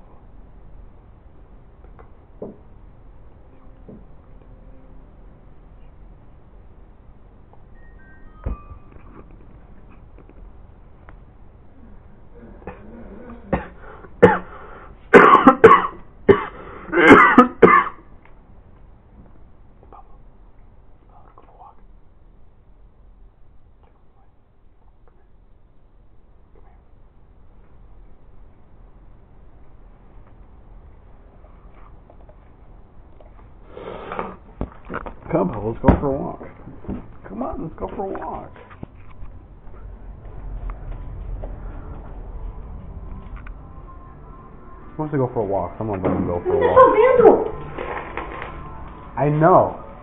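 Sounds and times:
harsh cough-like bursts: 13.4 - 18.1.

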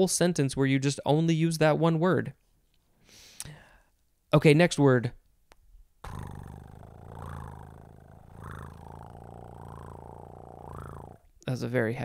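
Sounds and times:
cat purring: 6.0 - 11.3.

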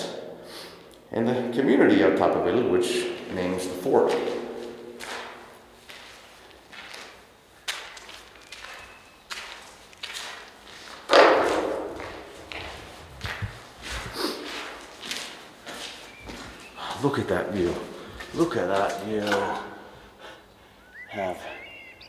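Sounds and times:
echoing footsteps on gritty floor: 2.9 - 20.0
loud thump: 11.1 - 12.1.

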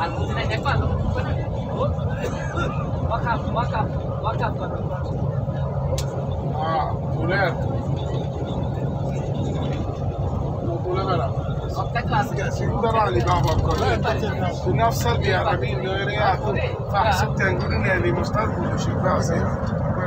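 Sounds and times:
engine and road rumble: 0.0 - 20.0.

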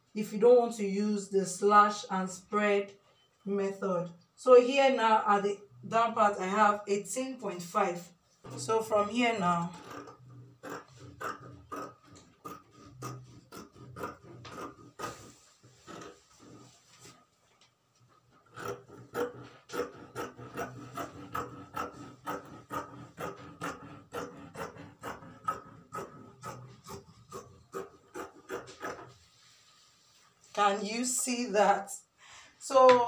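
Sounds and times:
chalk scraping across fabric: 14.4 - 17.2, 28.6 - 30.6.

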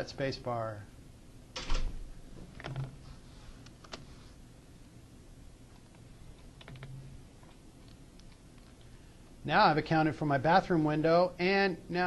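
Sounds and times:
keyboard keystrokes: 6.5 - 7.0.

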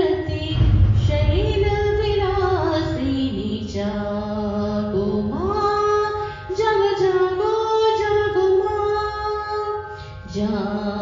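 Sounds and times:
woman singing: 0.0 - 11.0.

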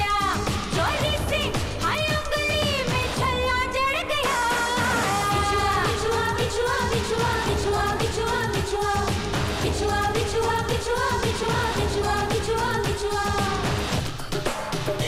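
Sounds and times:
person singing: 0.0 - 13.8
dance beat: 0.0 - 15.0.

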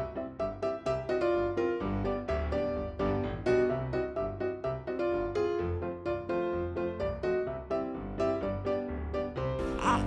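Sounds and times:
piano tune with bass line: 0.0 - 10.0.

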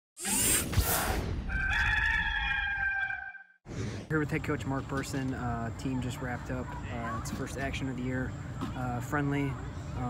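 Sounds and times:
rooster crowing: 1.5 - 3.5.

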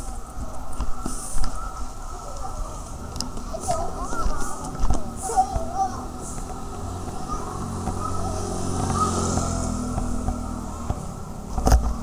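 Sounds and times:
vehicle engine passing: 5.0 - 12.0.

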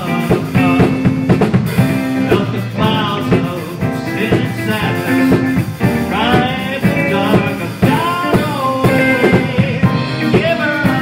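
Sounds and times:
live rock band playing: 0.0 - 11.0
person singing melody: 2.1 - 11.0.

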